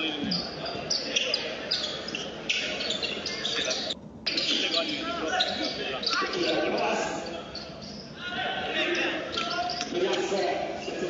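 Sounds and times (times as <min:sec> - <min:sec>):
crowd talking and shouting: 0:00.0 - 0:11.0.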